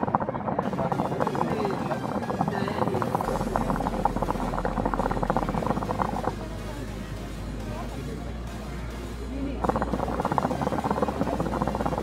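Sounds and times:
hookah bubbling: 0.0 - 12.0.

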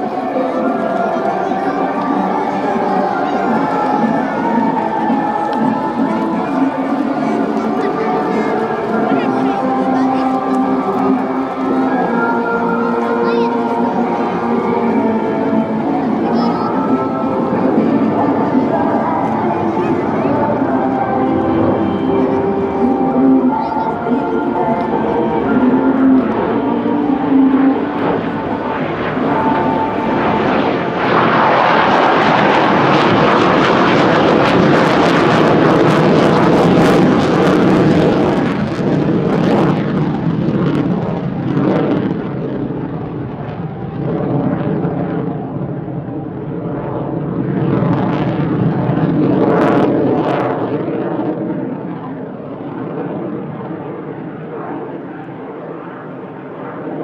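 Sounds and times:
fighter jet engine rush: 0.0 - 57.0.

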